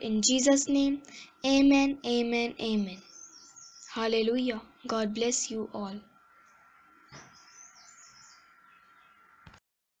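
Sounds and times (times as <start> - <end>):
faint bird chirping: 0.0 - 9.6.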